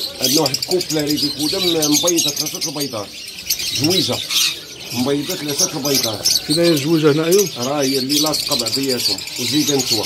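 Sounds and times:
cage birds chirping: 0.0s - 10.0s.

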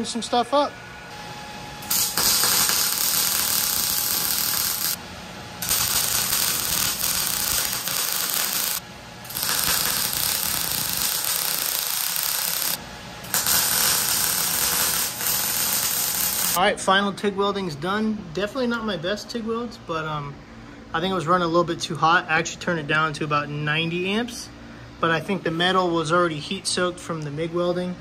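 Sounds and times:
welder arc crackling and sizzling: 1.8s - 16.6s.

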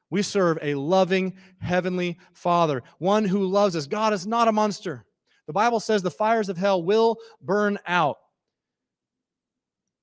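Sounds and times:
man speaking: 0.0s - 8.2s.

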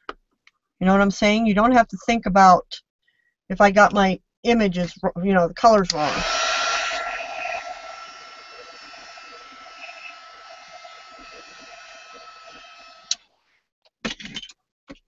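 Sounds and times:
hot-air dryer blowing with whine: 5.9s - 13.2s.

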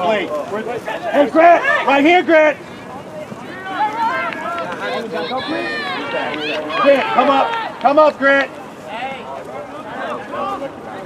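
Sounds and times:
distant voices shouting: 0.0s - 11.0s.

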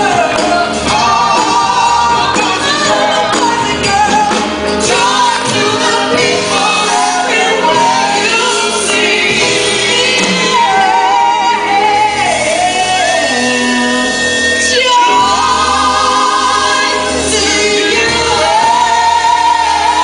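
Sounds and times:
grand piano accompaniment: 0.0s - 20.0s
woman singing gospel-style: 0.0s - 20.0s.

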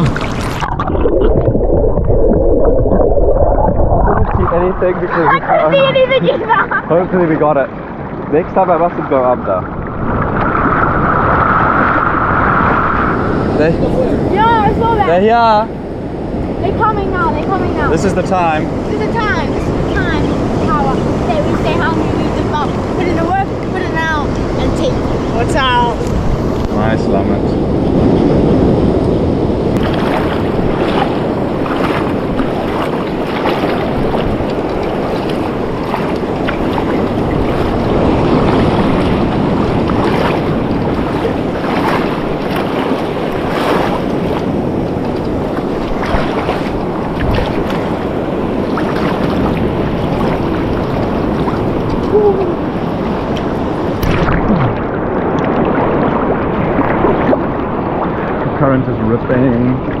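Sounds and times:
sea water sloshing and splashing: 0.0s - 26.7s, 27.5s - 60.0s
wind on microphone: 0.0s - 60.0s.

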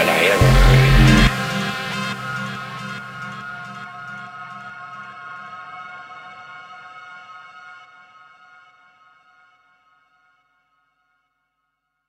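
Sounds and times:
held synth chord: 0.0s - 5.2s.

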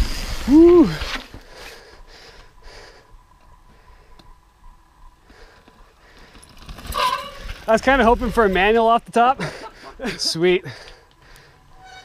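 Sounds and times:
mountain bike rolling over rock: 5.5s - 9.1s.

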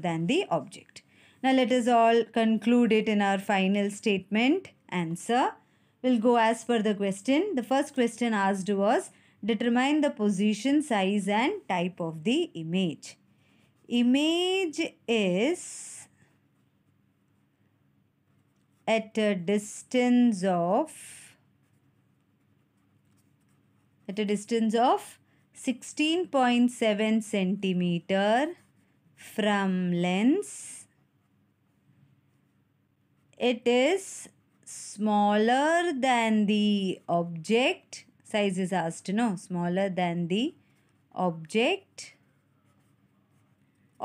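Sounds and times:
pen scratching on paper: 9.7s - 37.9s, 39.0s - 44.0s.

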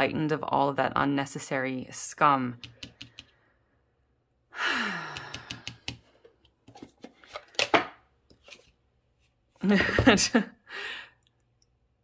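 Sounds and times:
woman sighing: 4.5s - 5.8s.

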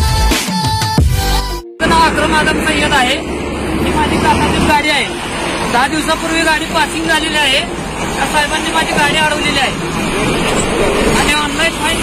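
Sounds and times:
people talking: 1.8s - 9.8s, 11.0s - 12.0s
road traffic rumble: 1.8s - 12.0s.

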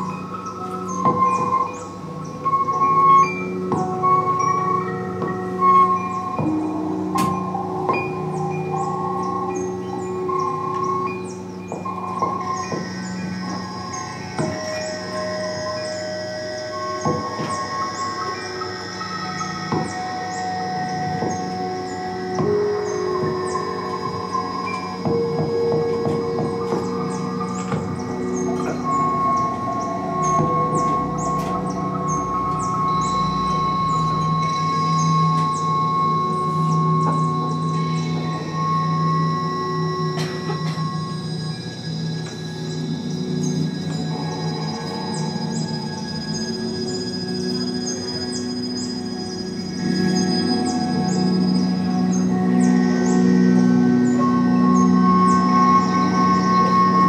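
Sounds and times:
low drone: 0.0s - 57.0s.

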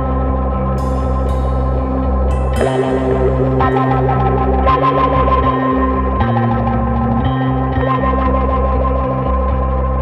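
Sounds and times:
distorted electric guitar with echo: 0.0s - 10.0s
low bass notes: 0.0s - 10.0s.

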